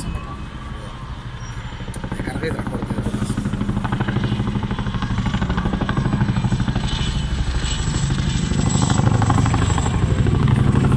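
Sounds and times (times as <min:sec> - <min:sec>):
helicopter rotor chop: 0:00.0 - 0:10.9.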